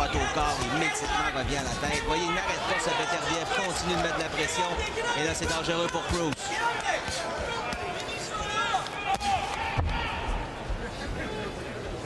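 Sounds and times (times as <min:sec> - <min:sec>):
people shouting: 0:00.0 - 0:10.5
arena crowd noise: 0:00.0 - 0:12.0.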